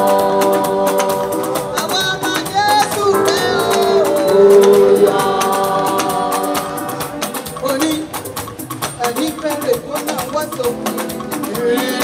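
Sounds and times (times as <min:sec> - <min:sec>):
background voices singing: 0:00.0 - 0:07.7
quick percussion beat: 0:00.0 - 0:12.0.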